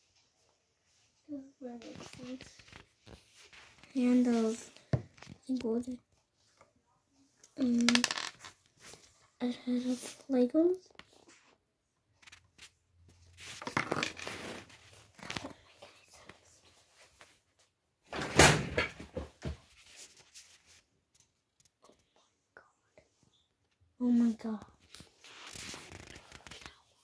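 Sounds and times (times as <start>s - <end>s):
rustling handling noise: 0.0s - 6.7s, 12.2s - 17.7s, 24.5s - 27.0s.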